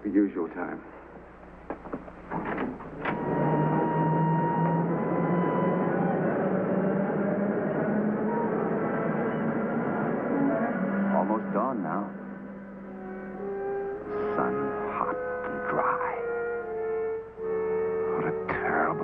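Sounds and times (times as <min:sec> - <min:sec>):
subway train rumbling: 0:02.7 - 0:16.8.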